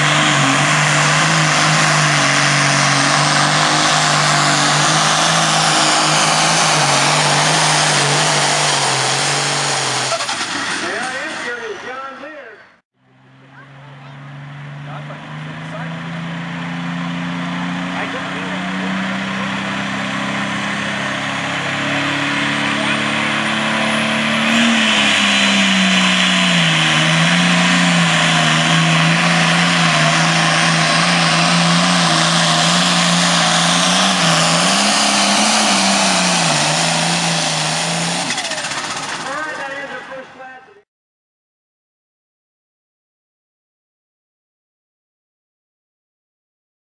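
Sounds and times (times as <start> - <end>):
diesel engine at full throttle: 0.0 - 40.7.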